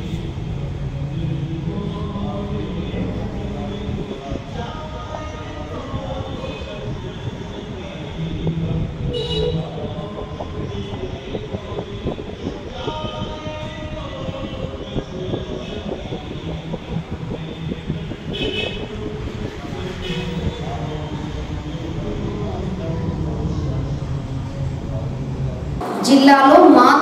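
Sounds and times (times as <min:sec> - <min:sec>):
indistinct voices: 0:00.0 - 0:27.0.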